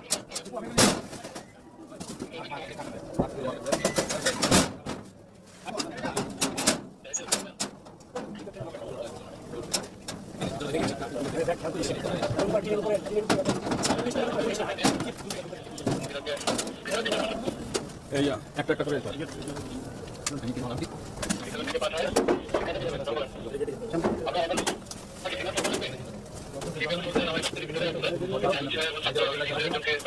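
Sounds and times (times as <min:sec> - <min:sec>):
low voices murmuring: 0:00.0 - 0:30.0.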